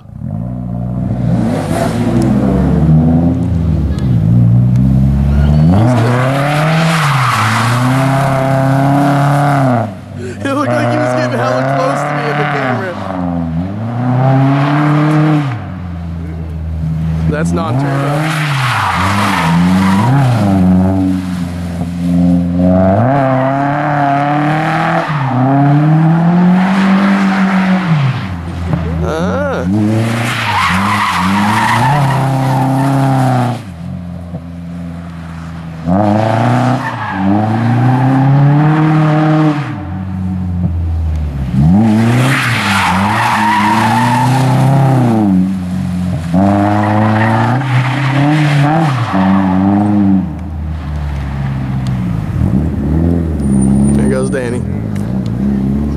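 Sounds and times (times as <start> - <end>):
car engines revving hard: 0.0 - 55.9.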